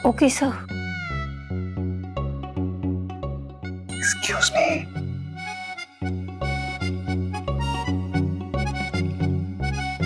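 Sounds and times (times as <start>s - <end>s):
light drama background music: 0.0s - 10.0s.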